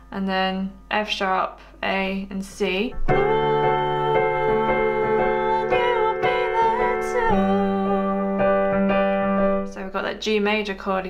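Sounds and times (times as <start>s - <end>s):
piano chords: 2.8s - 10.4s.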